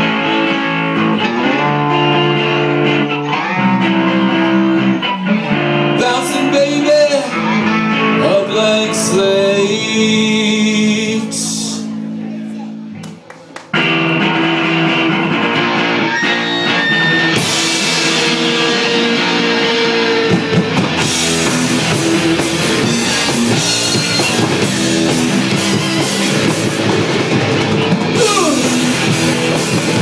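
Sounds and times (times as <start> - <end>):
rock band playing: 0.0 - 12.1, 12.8 - 30.0.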